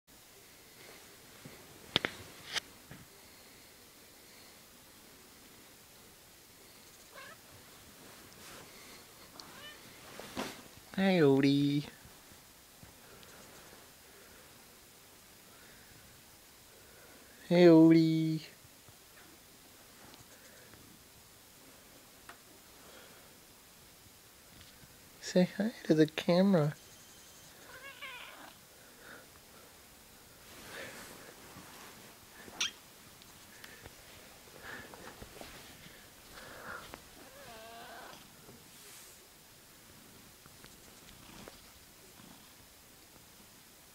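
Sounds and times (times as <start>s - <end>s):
cat meowing faintly: 7.1s - 7.4s, 9.4s - 9.9s, 26.9s - 28.6s, 37.2s - 38.3s.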